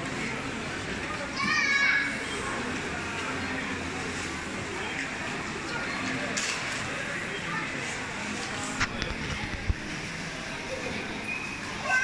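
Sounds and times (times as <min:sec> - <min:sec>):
people chattering: 0:00.0 - 0:12.0
child shouting: 0:01.4 - 0:02.1.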